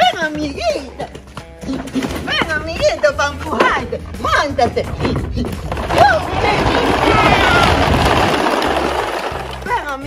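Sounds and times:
background music with bass line: 0:00.0 - 0:10.0
plastic toy wheels rattling on pavement: 0:04.4 - 0:10.0.

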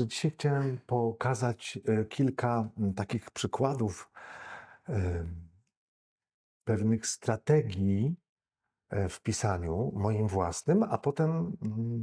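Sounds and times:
man inhaling: 0:04.1 - 0:04.9.

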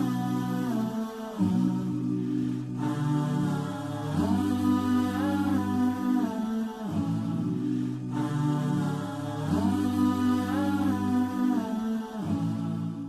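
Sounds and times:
low sustained tone: 0:00.0 - 0:13.0
wordless hummed vocals: 0:00.0 - 0:13.0.

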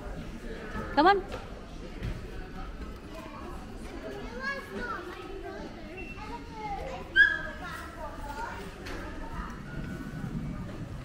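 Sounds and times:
children chattering and calling: 0:01.9 - 0:11.0.

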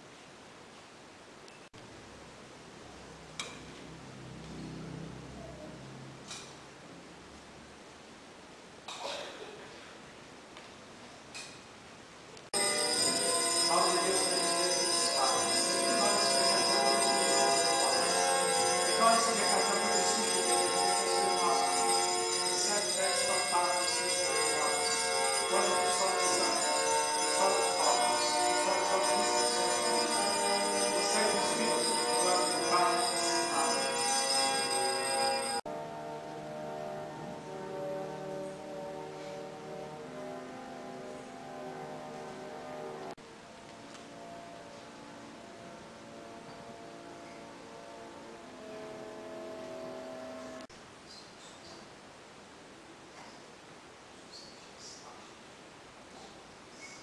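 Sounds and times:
small bells jangling: 0:12.6 - 0:35.6
music with sustained chords: 0:12.6 - 0:50.7.

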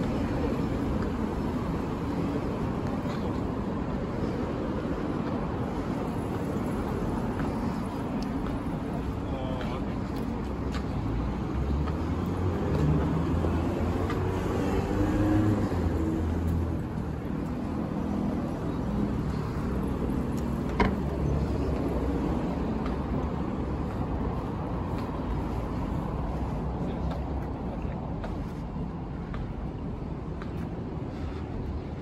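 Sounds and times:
road traffic passing: 0:00.0 - 0:32.0.

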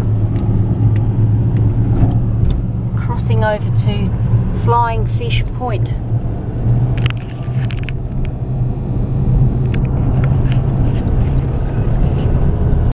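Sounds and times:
vehicle engine and tyres droning: 0:00.0 - 0:12.9.

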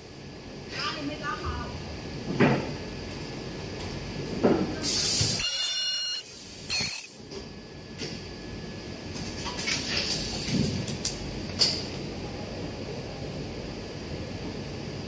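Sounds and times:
high buzz: 0:05.4 - 0:07.2.

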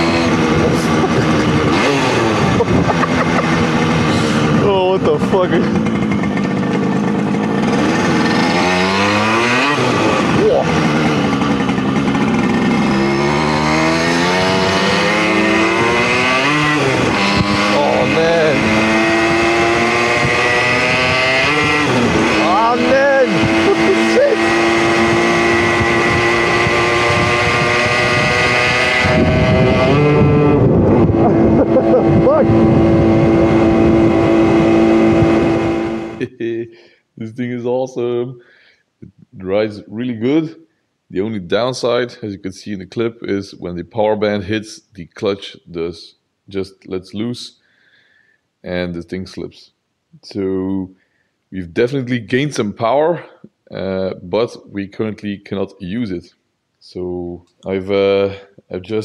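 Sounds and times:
two-stroke motorcycle revving: 0:00.0 - 0:36.4.

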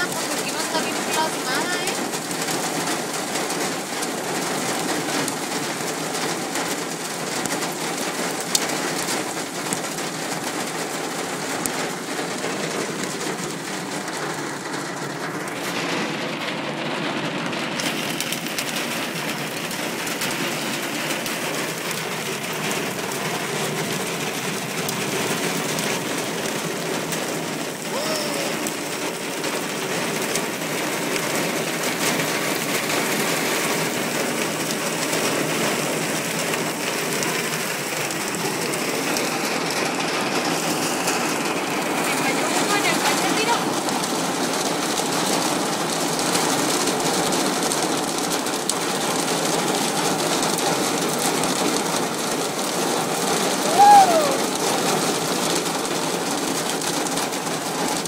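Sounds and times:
hail and rain pelting: 0:00.0 - 0:58.0.

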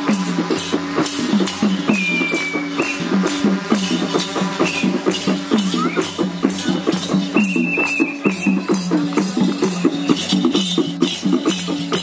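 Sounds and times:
drums beating quickly: 0:00.0 - 0:12.0.

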